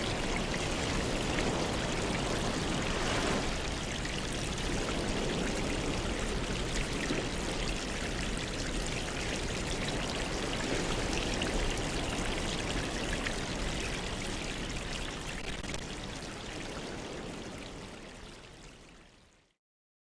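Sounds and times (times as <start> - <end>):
water splashing and trickling: 0.0 - 19.5.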